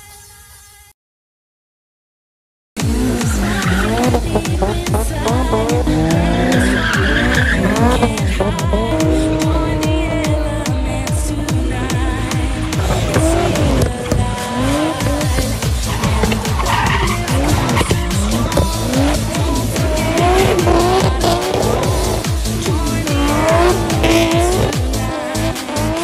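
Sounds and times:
car engines revving: 2.8s - 26.0s
dance music with steady beat: 2.8s - 26.0s
tyres squealing: 3.1s - 10.1s, 11.8s - 26.0s.

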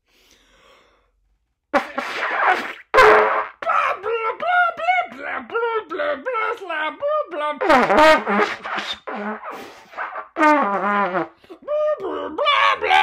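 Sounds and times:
trumpet blasts and wobbling notes: 1.8s - 3.6s, 7.6s - 11.4s.

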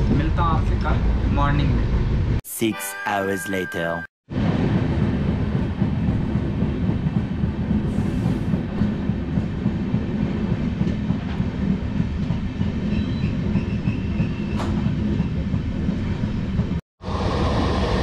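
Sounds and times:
train rumbling: 0.0s - 2.4s, 4.3s - 18.0s.

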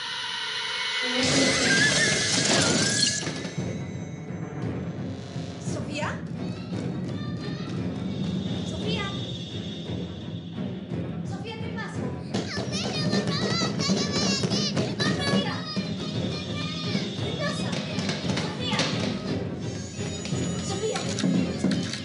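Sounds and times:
horror music score: 0.0s - 22.0s
high wavering children's voices: 5.9s - 9.7s, 11.2s - 22.0s.

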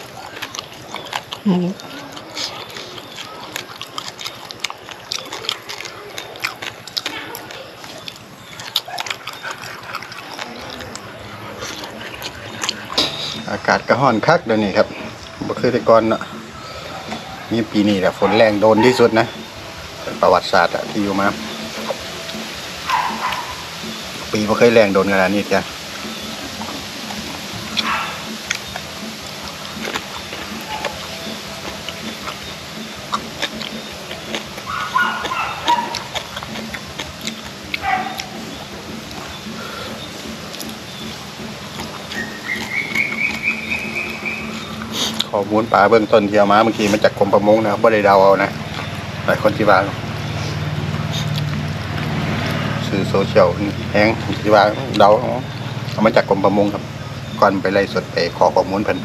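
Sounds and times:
person chewing crunchy food: 0.0s - 56.8s
mouth clicks: 0.0s - 59.0s.

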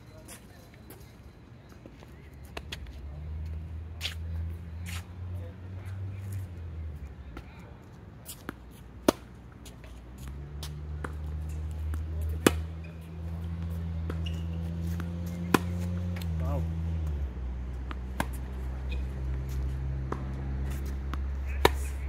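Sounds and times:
tennis ball bouncing: 8.2s - 16.4s, 17.0s - 22.0s
tennis ball struck by racket: 8.4s - 9.4s, 10.2s - 12.9s, 13.6s - 16.4s, 17.8s - 22.0s.

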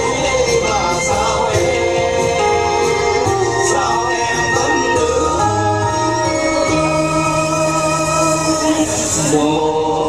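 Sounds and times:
person singing folk song: 0.0s - 10.0s.

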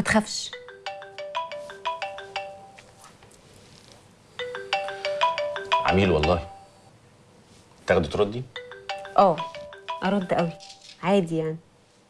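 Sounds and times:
phone melodic ringtone: 0.5s - 3.0s, 4.3s - 6.9s, 8.5s - 10.9s.

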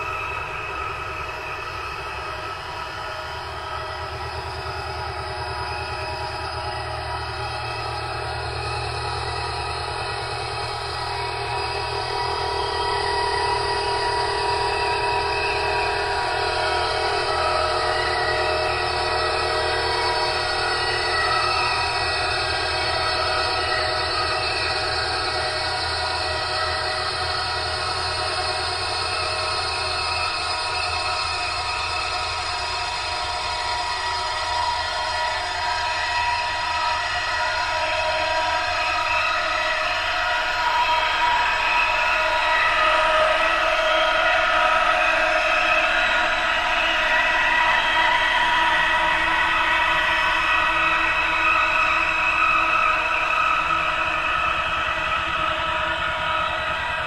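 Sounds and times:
ambient drone: 0.0s - 57.0s.

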